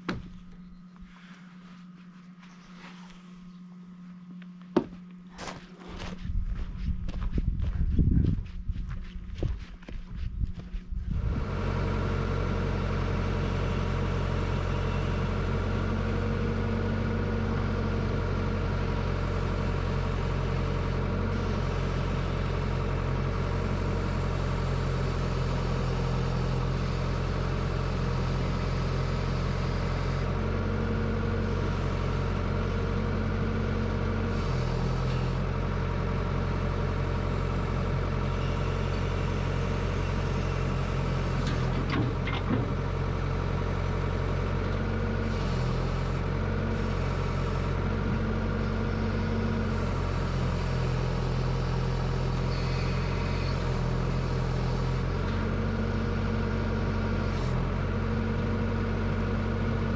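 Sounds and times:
excavator diesel engine running: 0.0s - 59.9s.

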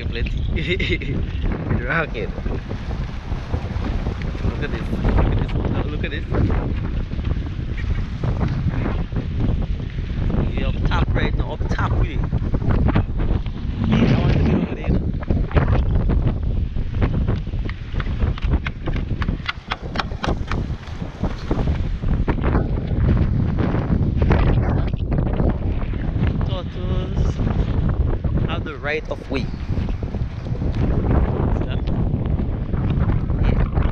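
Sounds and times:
wind buffeting microphone: 0.0s - 33.9s
footsteps on wooden planks: 17.9s - 23.0s.

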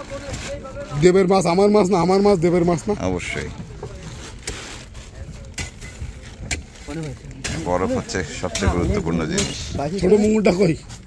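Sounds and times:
low uneven rumble: 2.3s - 9.9s.

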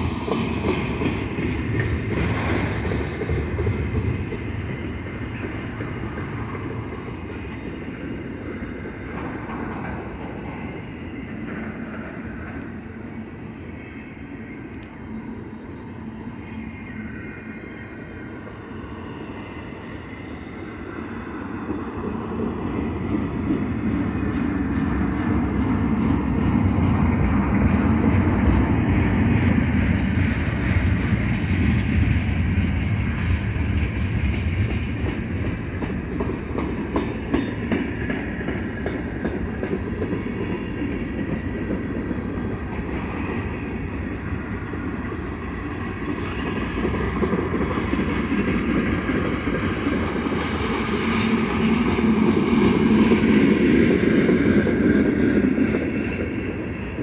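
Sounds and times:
wheels clicking over rail joints: 0.0s - 12.9s, 21.7s - 43.9s
train wheels rumbling on rail: 0.0s - 57.0s.

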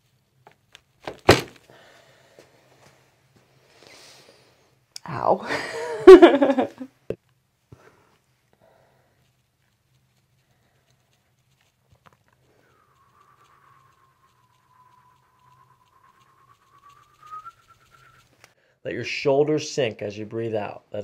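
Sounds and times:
breath whistling through nose: 3.6s - 4.6s, 12.4s - 18.7s.

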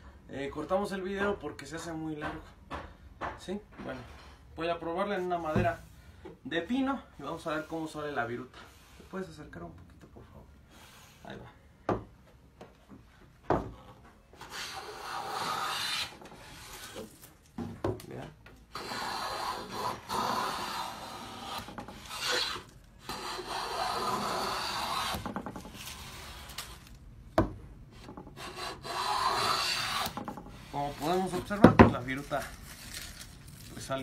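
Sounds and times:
hand plane shaving wood: 14.4s - 17.0s, 18.7s - 25.3s, 28.4s - 31.4s.

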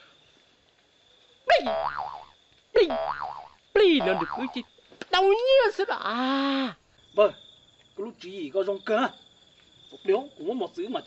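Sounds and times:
bamboo water pipe boing: 1.7s - 2.3s, 2.9s - 4.5s.

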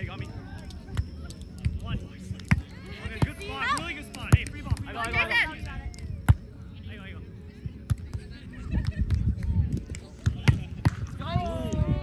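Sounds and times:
volleyball struck with slaps: 10.2s - 11.1s.

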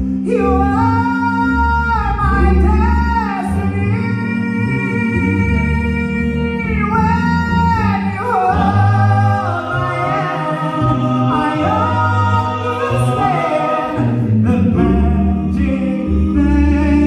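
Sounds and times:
backing harmony chords: 0.0s - 17.0s.

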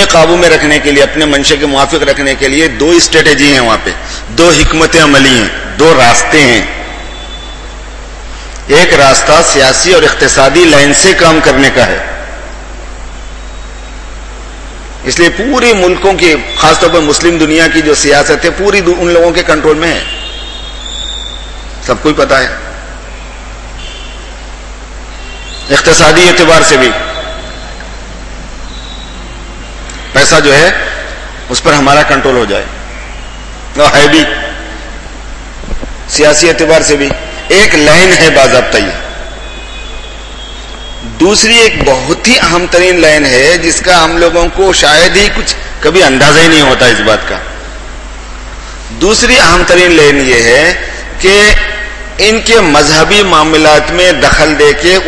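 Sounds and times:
steady hiss: 0.0s - 55.0s.

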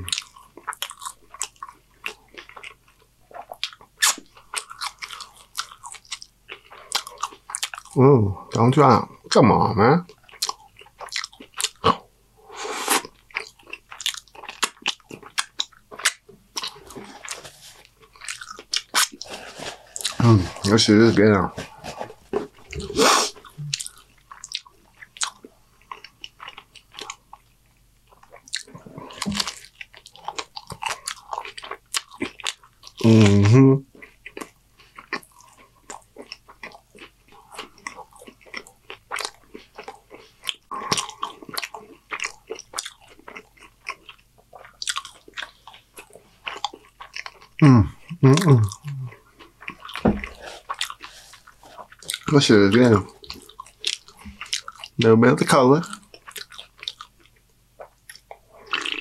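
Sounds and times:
close chewing with mouth clicks: 0.0s - 8.6s, 10.0s - 12.0s, 12.7s - 59.0s
person humming: 33.0s - 33.8s, 47.6s - 49.1s.

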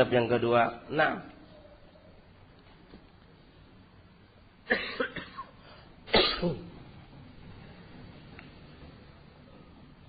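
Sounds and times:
man coughing: 4.7s - 6.8s.

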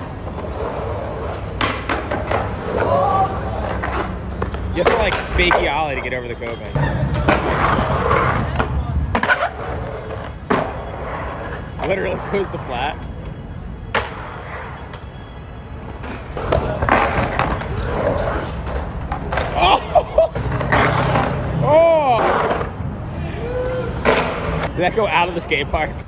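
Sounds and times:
skateboard wheels rolling on concrete: 0.0s - 26.0s
people shouting: 2.7s - 3.7s, 23.2s - 24.1s.

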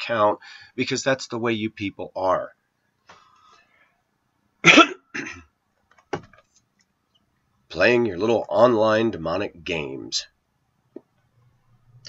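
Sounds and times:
man coughing: 4.6s - 5.5s.

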